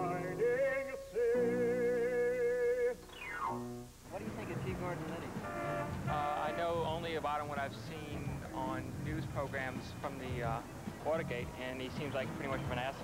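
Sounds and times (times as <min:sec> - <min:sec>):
man singing with vibrato: 0:00.0 - 0:03.4
street sounds: 0:00.0 - 0:13.0
people talking: 0:04.1 - 0:05.5, 0:06.1 - 0:13.0.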